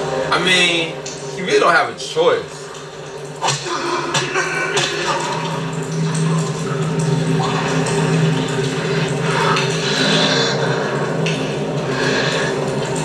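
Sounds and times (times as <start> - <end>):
low musical drone: 0.0 - 13.0.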